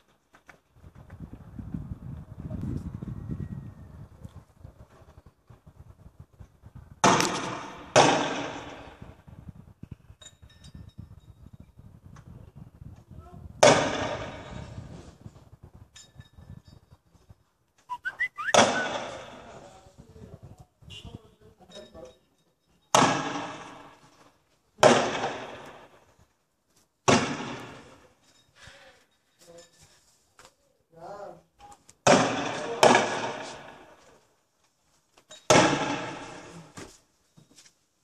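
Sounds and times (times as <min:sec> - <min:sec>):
loud echoing bangs: 0:07.0 - 0:09.1, 0:24.8 - 0:26.0, 0:27.0 - 0:28.0.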